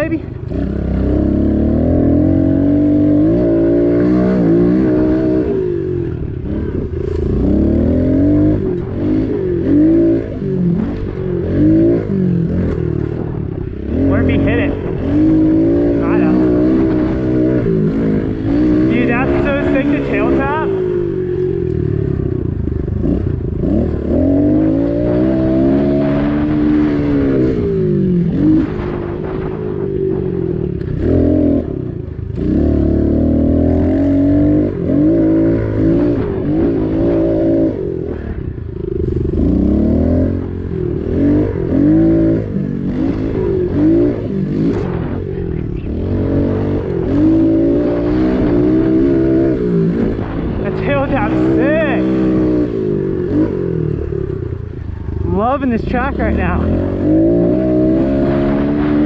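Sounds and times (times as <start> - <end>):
motorbike engine revving: 0.0 - 59.0.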